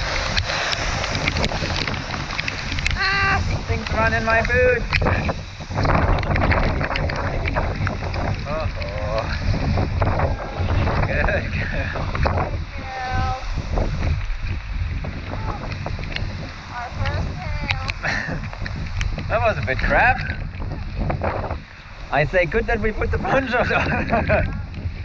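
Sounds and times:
hailstones ticking on ponchos: 0:00.0 - 0:09.4
wind rumble on microphone: 0:00.0 - 0:25.0.

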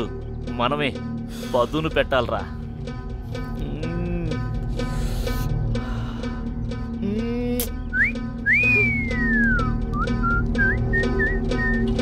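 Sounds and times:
background music with beat: 0:02.4 - 0:12.0
man whistling: 0:07.9 - 0:12.0.

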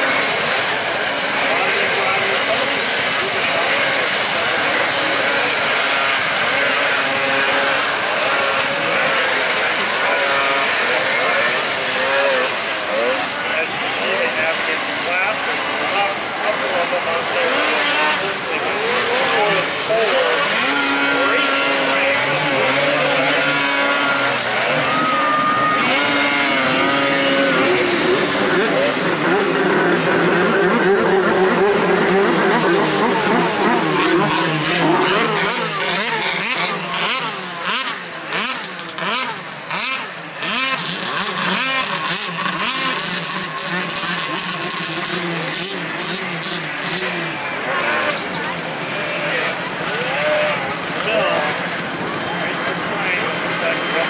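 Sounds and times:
snowmobile engines revving: 0:00.0 - 0:54.0.

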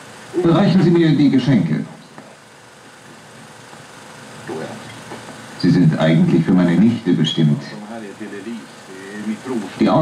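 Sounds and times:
film soundtrack hiss and hum: 0:00.0 - 0:10.0.

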